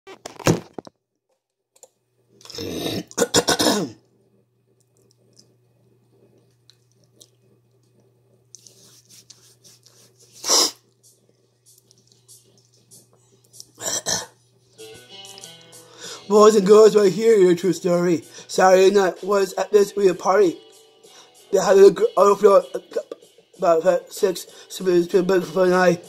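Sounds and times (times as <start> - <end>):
person coughing: 2.6 - 4.0, 13.8 - 14.4.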